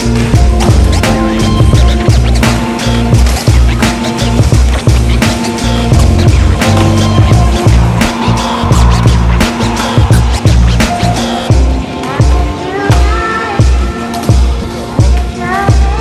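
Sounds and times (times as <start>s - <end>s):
skateboard wheels rolling on concrete: 0.0s - 13.4s
bass-heavy music with steady beat: 0.0s - 16.0s.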